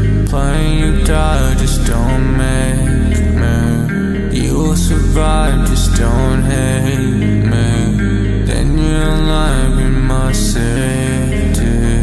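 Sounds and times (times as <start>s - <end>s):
deep steady bass: 0.0s - 12.0s
sustained pitched tones: 0.0s - 12.0s.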